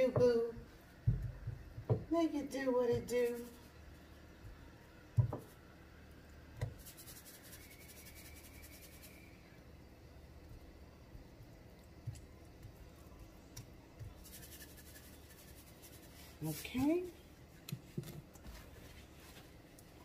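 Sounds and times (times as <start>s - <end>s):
paper towel rustling: 18.4s - 19.7s.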